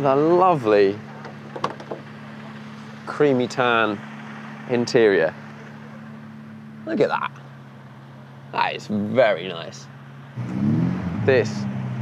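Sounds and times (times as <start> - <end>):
car door latch clicks: 1.2 - 2.0.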